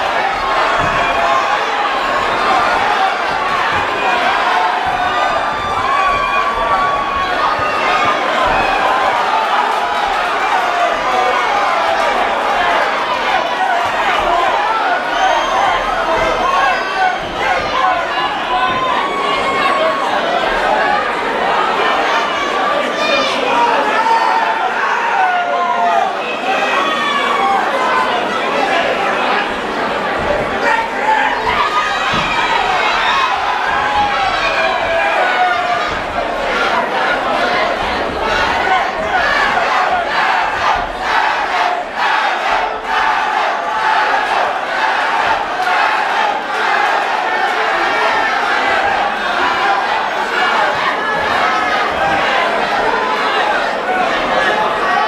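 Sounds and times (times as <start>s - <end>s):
crowd shouting and cheering: 0.0s - 55.0s.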